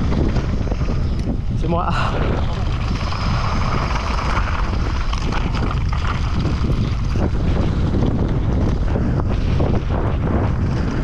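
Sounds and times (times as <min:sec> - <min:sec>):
bike tyres on loose gravel: 0:00.0 - 0:11.0
wind buffeting microphone: 0:00.0 - 0:11.0.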